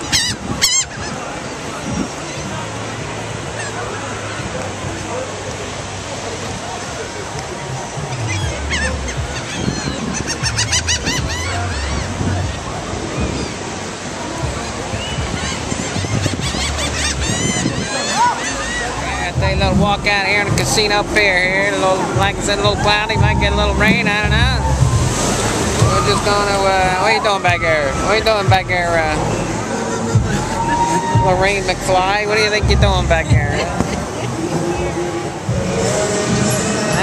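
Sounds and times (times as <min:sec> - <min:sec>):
laughing gulls calling: 0:00.0 - 0:02.7, 0:03.4 - 0:04.5, 0:07.8 - 0:37.0
wind on microphone: 0:00.0 - 0:05.2, 0:06.0 - 0:37.0
surf: 0:00.0 - 0:37.0.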